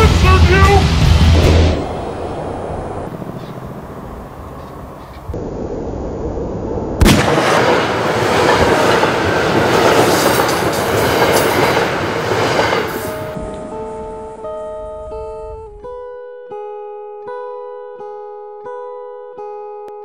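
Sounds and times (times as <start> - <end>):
train passing rushing rattling: 0.0 - 5.4, 7.2 - 13.8
guitar slow plucked notes: 13.4 - 20.0.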